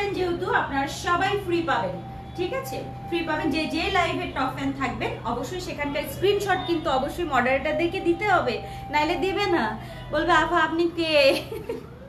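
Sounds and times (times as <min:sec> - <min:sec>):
woman speaking: 0:00.0 - 0:11.8.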